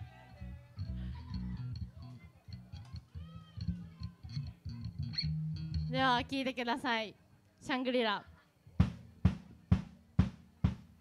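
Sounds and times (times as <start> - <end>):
bass guitar soft low notes: 0.0 - 6.4.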